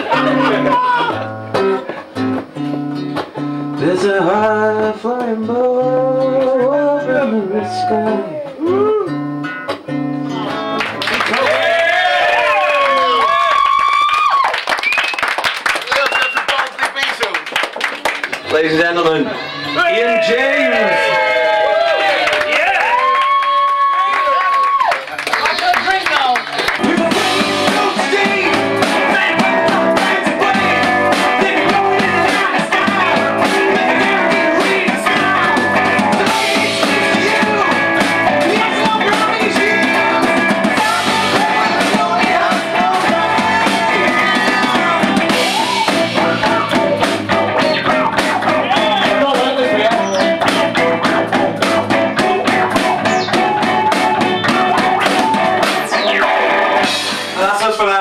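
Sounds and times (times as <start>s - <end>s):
rock band playing: 0.0s - 13.2s, 18.2s - 22.1s, 25.3s - 58.0s.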